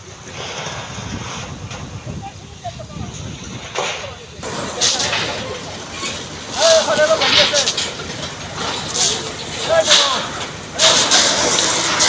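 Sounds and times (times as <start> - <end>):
steady hiss: 0.0 - 12.0.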